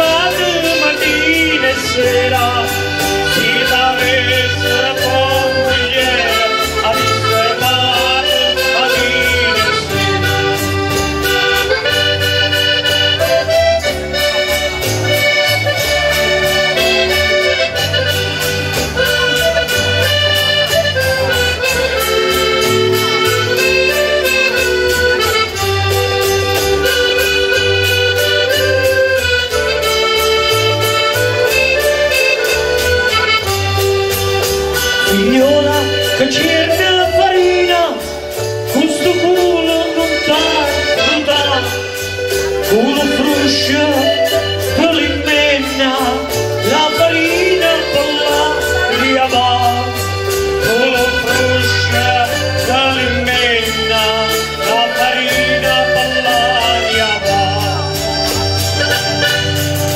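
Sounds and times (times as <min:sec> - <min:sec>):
folk band with acoustic guitars: 0:00.0 - 0:59.9.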